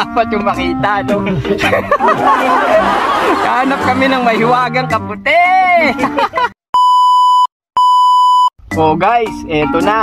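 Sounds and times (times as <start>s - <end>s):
high electronic beep: 6.8s - 8.5s.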